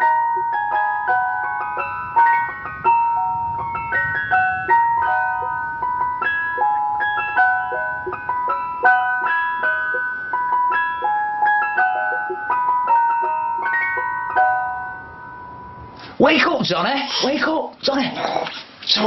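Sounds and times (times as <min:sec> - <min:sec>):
ice cream van chime tune: 0:00.0 - 0:16.1.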